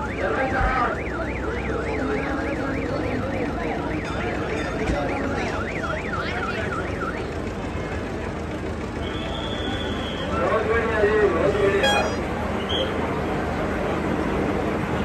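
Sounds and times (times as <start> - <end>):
electronic siren warbling: 0.0 - 7.4, 11.8 - 12.2
steady high tone: 0.0 - 7.6, 11.8 - 12.3
crowd chatter: 0.0 - 15.0.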